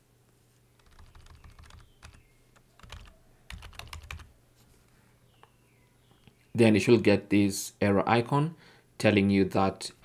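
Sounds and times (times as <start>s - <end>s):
computer keyboard clicks: 0.8s - 2.2s, 2.8s - 4.3s.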